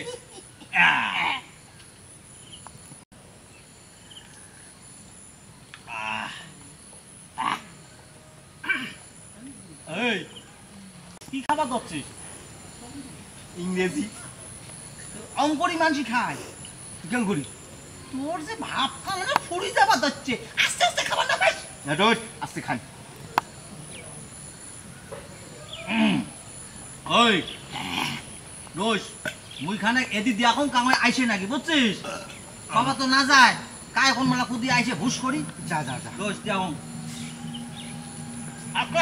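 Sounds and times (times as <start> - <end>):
insect chirring: 0.0 - 39.0.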